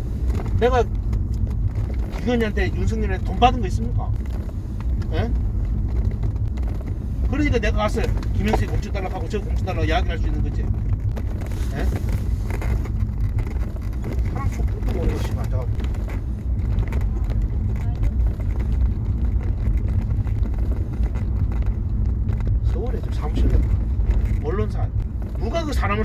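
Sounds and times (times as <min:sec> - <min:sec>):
hum: 0:00.0 - 0:26.0
low rumble: 0:00.0 - 0:26.0.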